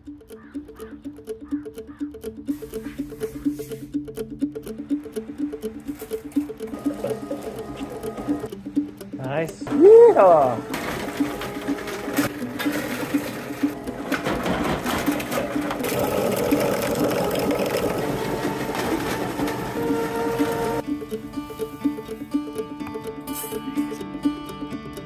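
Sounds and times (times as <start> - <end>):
background music: 0.0 - 25.0
plastic shredder running: 6.8 - 8.5, 10.3 - 20.8.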